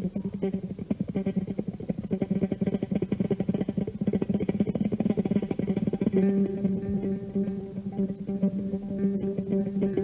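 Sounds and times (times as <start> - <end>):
electric bass guitar played fast: 0.0 - 10.0.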